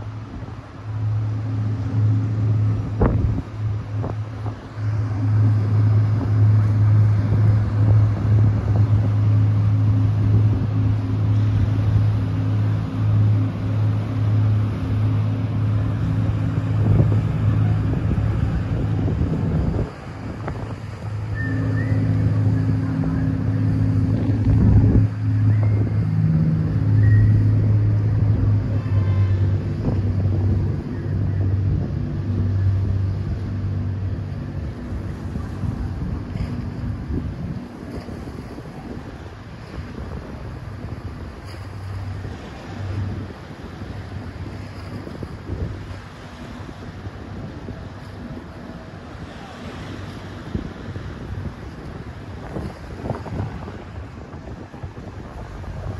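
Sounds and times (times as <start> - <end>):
boat engine humming: 0.0 - 55.9
wind rumbling on microphone: 0.0 - 55.9.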